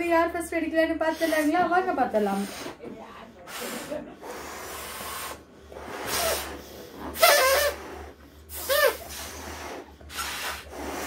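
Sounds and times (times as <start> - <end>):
breaths blowing up balloons: 1.0 - 11.0.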